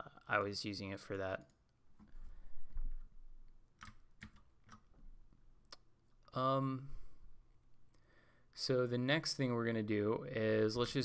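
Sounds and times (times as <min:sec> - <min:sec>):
faint keyboard keystrokes: 0:03.8 - 0:05.1.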